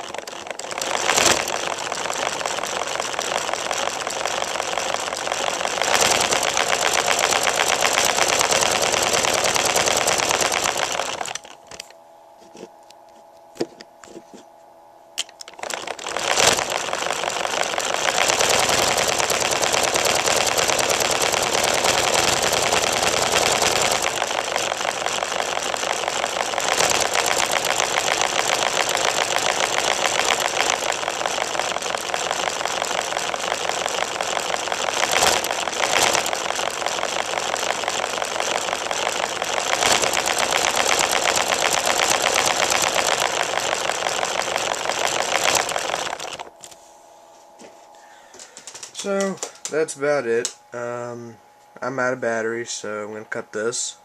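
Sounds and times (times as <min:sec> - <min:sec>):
plastic model engine rattling: 0:00.0 - 0:11.9, 0:15.4 - 0:46.5.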